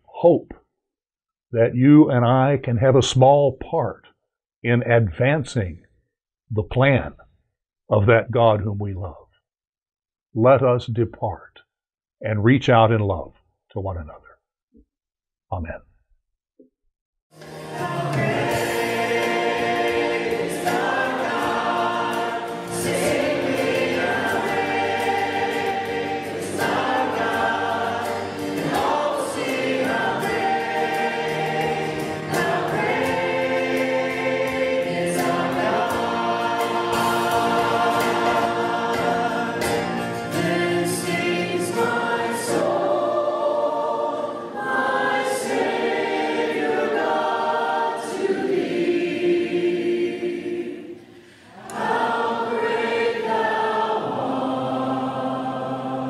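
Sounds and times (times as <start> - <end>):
choir singing a hymn: 17.4 - 56.0.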